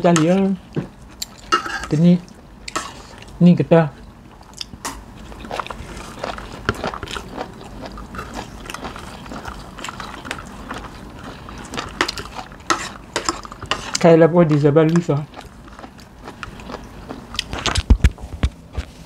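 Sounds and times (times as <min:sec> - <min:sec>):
cutlery clinking on plates: 0:01.2 - 0:02.0
chewing: 0:04.0 - 0:17.9
person speaking: 0:13.9 - 0:15.4.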